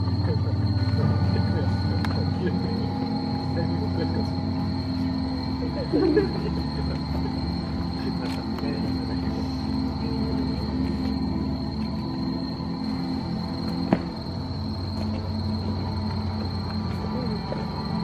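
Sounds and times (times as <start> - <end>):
ambient drone music: 0.0 - 18.0.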